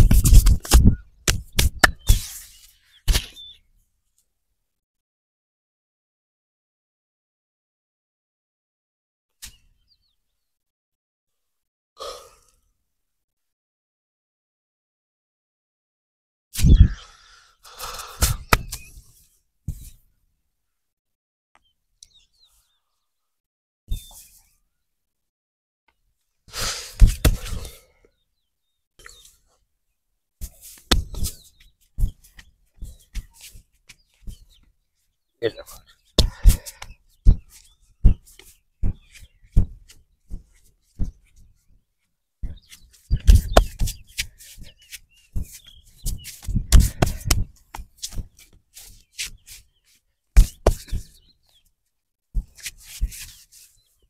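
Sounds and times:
sharp slaps and pats on leg: 0.0 - 2.4, 3.1 - 3.4, 18.2 - 18.9, 26.6 - 27.8, 30.4 - 31.4, 36.2 - 37.4, 42.4 - 44.7, 45.4 - 48.3, 50.4 - 51.1
hands rubbing cloth trousers: 42.5 - 51.2, 52.4 - 53.9.

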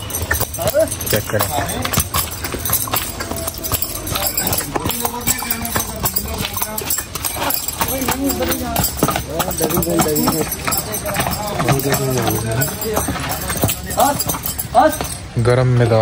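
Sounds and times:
hooves clopping on hard dirt: 0.0 - 16.0.

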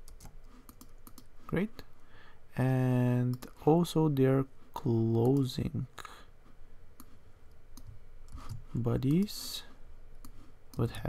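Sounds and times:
computer mouse clicks: 0.0 - 1.3, 7.0 - 9.2.

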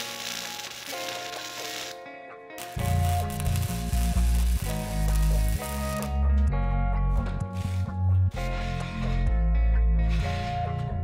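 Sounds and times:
arc welding crackling hiss: 0.0 - 2.0, 2.6 - 6.2
background music: 0.0 - 11.0.

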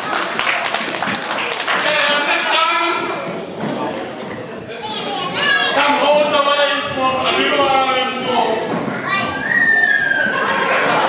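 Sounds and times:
people talking in a hall: 0.0 - 11.0.

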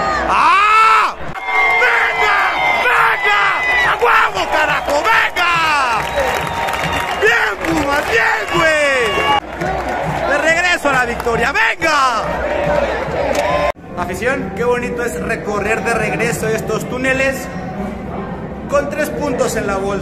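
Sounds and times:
stadium crowd cheering: 0.0 - 13.8.

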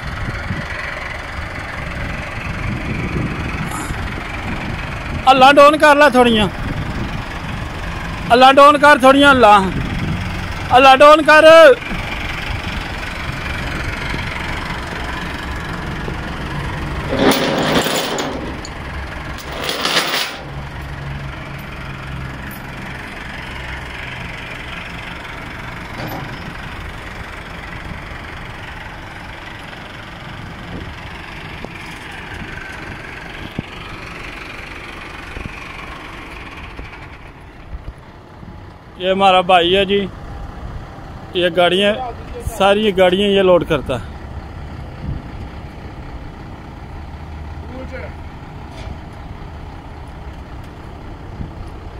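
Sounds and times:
tractor diesel engine running: 0.0 - 51.9.

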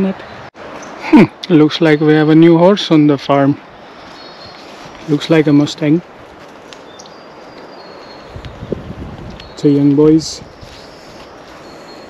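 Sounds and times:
steady background hiss: 0.0 - 12.0
bird chirps: 0.2 - 2.5, 4.0 - 5.6, 6.8 - 12.0.

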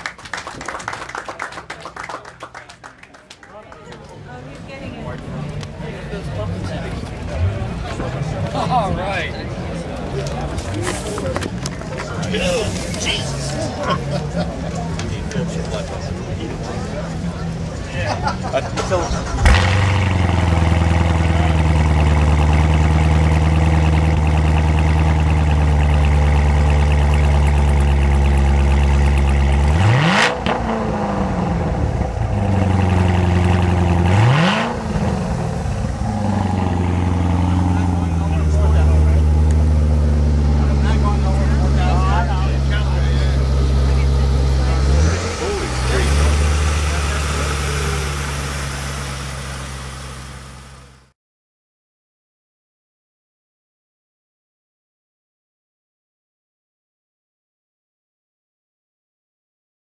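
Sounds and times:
car engine idling and revving: 4.4 - 51.1.

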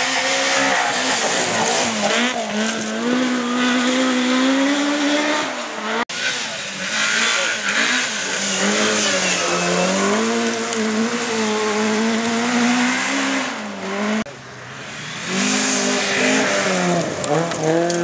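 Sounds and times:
rally car engines revving: 0.0 - 18.0
gravel spraying: 6.6 - 12.2, 14.7 - 18.0.

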